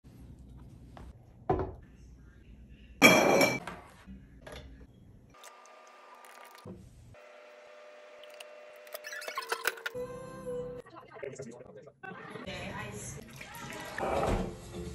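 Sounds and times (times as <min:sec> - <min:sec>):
glass bottles clinking: 0:03.0 - 0:03.6.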